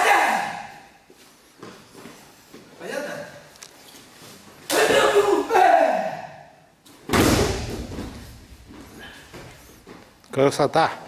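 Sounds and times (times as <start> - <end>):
loud shout: 0.0 - 0.9, 4.7 - 6.5
movement on gym mat: 6.9 - 10.3
heavy thud: 7.1 - 9.5.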